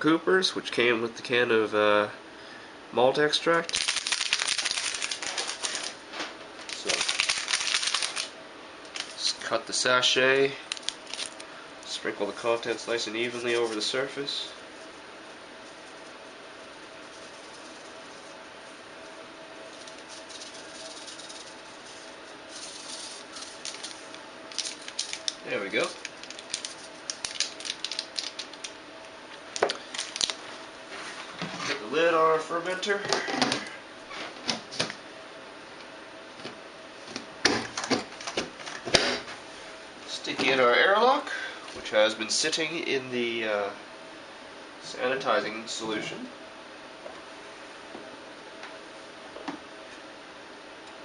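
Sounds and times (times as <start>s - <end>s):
faint steady hum: 0.0s - 51.0s
yeast sachet crinkling: 3.6s - 6.0s, 6.7s - 8.3s, 10.6s - 11.5s, 22.5s - 28.7s, 29.7s - 30.4s.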